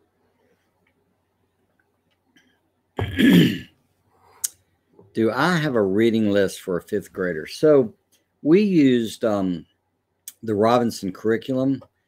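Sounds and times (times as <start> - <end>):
man clearing his throat: 3.0 - 3.7.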